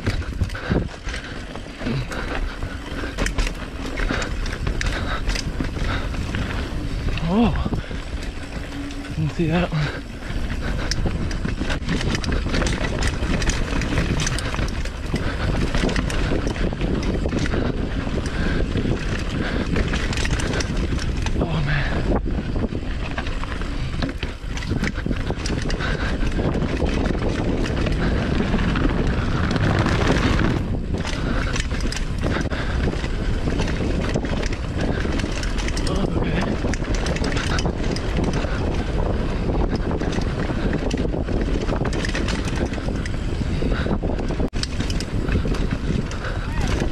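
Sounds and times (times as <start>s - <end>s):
bike crossing wooden boardwalk: 0.0s - 46.9s
bike rattling over bumps: 0.0s - 46.9s
tyres rolling on dirt: 0.0s - 46.9s
wind buffeting microphone: 0.0s - 46.9s.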